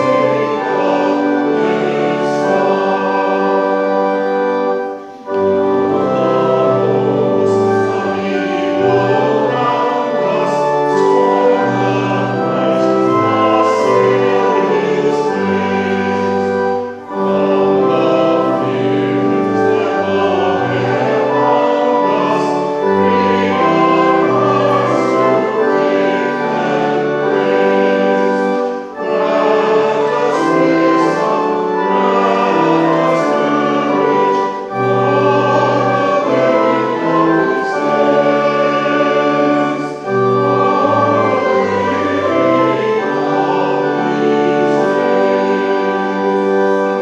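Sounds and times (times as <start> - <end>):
church organ: 0.0 - 47.0
congregation singing a hymn: 0.0 - 47.0.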